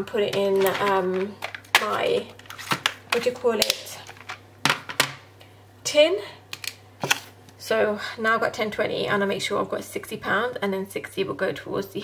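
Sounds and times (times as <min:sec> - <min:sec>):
person speaking: 0:00.0 - 0:02.5, 0:03.1 - 0:04.3.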